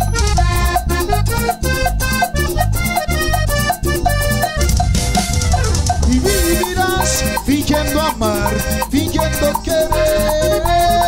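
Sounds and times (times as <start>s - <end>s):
live dance band music: 0.0s - 11.0s.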